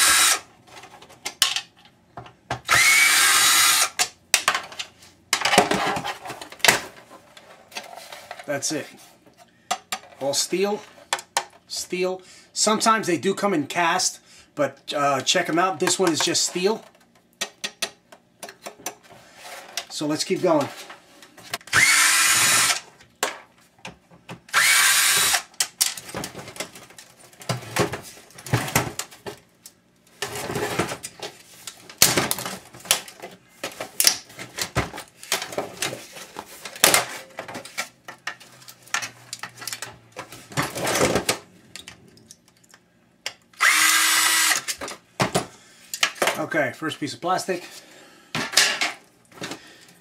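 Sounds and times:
power drill running: 0.0s - 0.4s, 2.7s - 4.0s, 21.7s - 22.8s, 24.5s - 25.5s, 43.6s - 44.7s
plastic and metal parts clattering: 0.6s - 2.7s, 4.0s - 8.7s, 25.6s - 42.8s, 48.4s - 49.6s.

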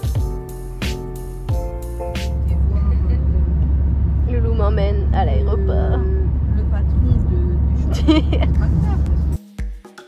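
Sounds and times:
car road and engine rumble: 0.0s - 9.4s.

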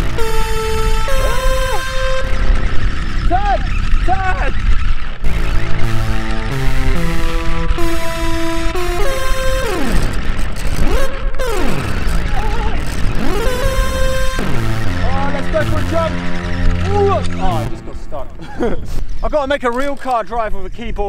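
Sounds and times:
synthesizer notes with pitch bends: 0.0s - 19.3s.

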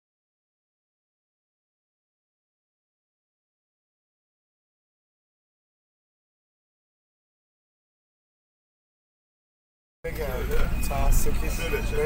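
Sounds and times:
indistinct voices: 10.1s - 12.0s
minibus engine rumble: 10.1s - 12.0s.

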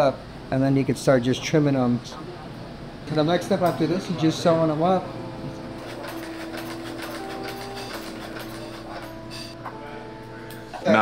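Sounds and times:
sewing machine clattering: 5.8s - 9.6s.

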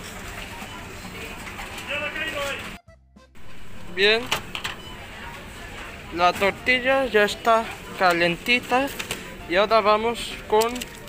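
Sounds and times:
in-store music: 0.0s - 11.0s
steady hum: 3.4s - 7.4s
distant voices: 3.4s - 8.3s.

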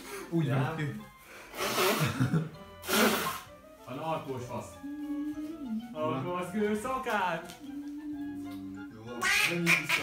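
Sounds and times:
faint music: 0.0s - 10.0s.

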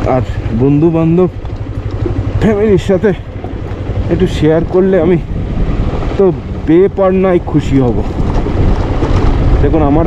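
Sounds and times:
man speaking: 0.0s - 1.4s, 2.4s - 3.3s, 4.0s - 5.3s, 6.2s - 8.1s
motorcycle engine running: 0.0s - 10.0s
wind buffeting microphone: 0.0s - 10.0s.

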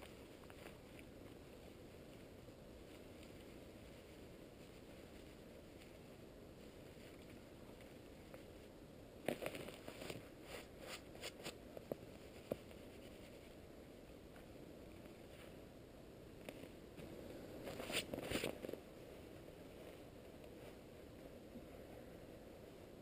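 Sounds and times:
dry grass crackling and rustling: 0.0s - 15.6s.

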